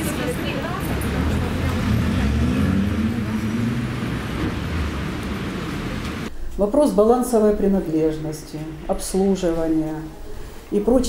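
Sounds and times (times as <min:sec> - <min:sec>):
street traffic: 0:00.0 - 0:06.3
vehicle engine passing by: 0:00.0 - 0:06.3.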